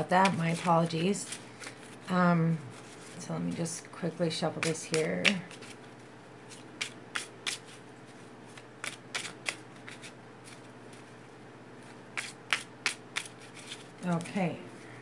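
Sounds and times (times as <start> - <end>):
cards being shuffled: 0.0 - 2.1, 4.5 - 11.2, 11.8 - 14.9.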